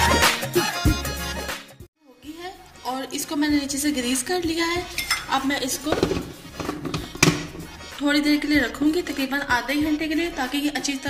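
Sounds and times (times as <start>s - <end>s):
background music: 0.0s - 11.0s
plastic container knocks: 5.9s - 7.7s.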